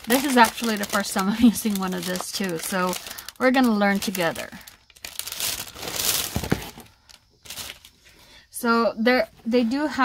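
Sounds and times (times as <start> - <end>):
plastic sleeve crinkling: 0.0 - 8.1.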